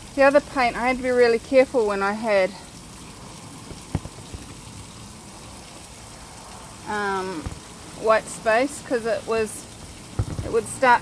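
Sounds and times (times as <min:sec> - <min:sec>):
wet foam crackle of sponge washing: 0:03.1 - 0:11.0.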